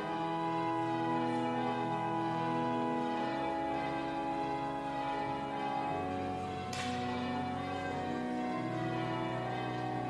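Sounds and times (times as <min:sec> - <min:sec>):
sustained church music chords: 0:00.0 - 0:10.0.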